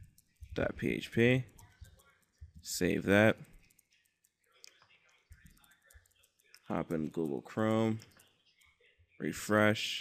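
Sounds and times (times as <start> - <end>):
computer keys clicking: 0.0 - 8.8.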